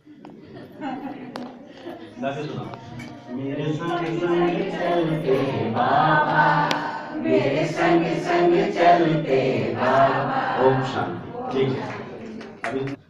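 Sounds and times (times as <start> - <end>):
voices singing in unison: 2.8 - 13.0.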